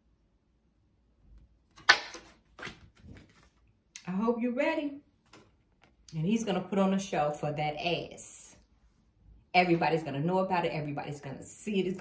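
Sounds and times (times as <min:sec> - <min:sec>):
cards tapping and rustling: 0:01.7 - 0:03.6
card slapped onto wooden table: 0:01.8 - 0:03.3.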